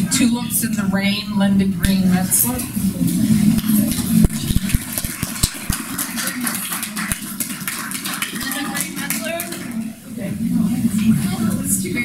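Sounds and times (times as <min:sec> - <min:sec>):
small group applauding: 0:03.6 - 0:10.0.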